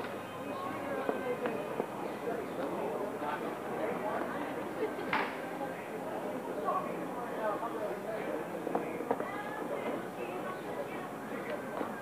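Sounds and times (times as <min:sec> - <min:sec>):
overlapping voices talking: 0:00.0 - 0:12.0.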